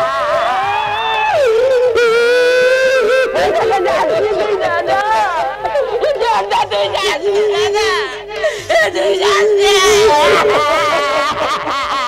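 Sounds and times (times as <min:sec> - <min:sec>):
person wailing with wavering voice: 0:01.3 - 0:05.4, 0:08.7 - 0:12.0.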